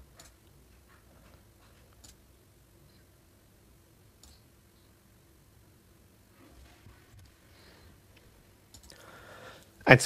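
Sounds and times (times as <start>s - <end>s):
computer mouse clicks: 0.2s - 0.5s, 1.9s - 2.2s, 4.2s - 4.4s, 8.7s - 9.0s.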